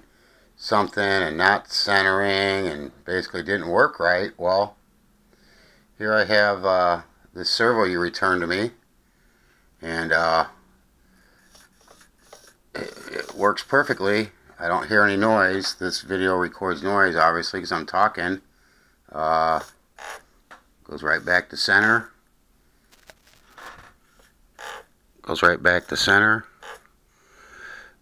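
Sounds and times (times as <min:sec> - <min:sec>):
faint servo movement sounds: 0:11.3 - 0:13.9, 0:19.5 - 0:20.4, 0:23.2 - 0:24.9, 0:25.6 - 0:26.9
servo motor whirring: 0:19.6 - 0:20.2.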